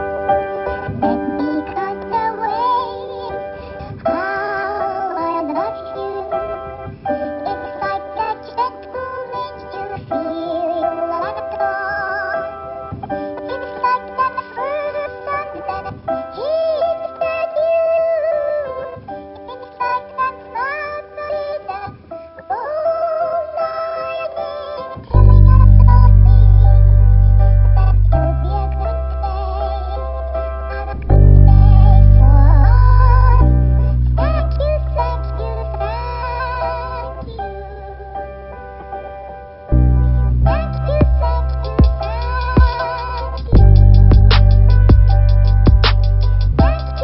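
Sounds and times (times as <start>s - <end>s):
voice-like melody: 0.0s - 12.5s, 22.5s - 38.4s, 39.7s - 47.0s
sustained keyboard chords: 25.1s - 47.0s
gliding synth melody: 31.0s - 34.2s.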